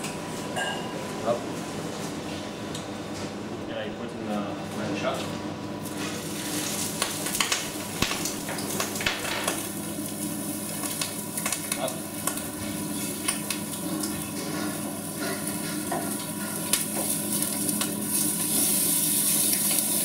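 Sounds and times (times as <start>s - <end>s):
clam sizzling in oil: 6.0s - 20.0s.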